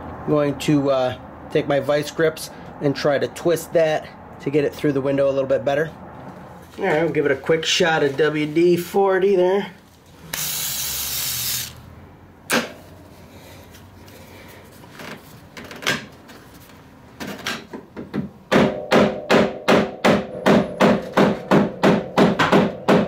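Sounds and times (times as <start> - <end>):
aerosol spray hiss: 10.4 - 11.8.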